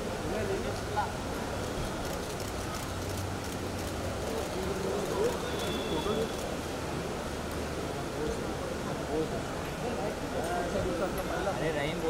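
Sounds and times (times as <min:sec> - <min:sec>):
traffic hum: 0:00.0 - 0:12.0.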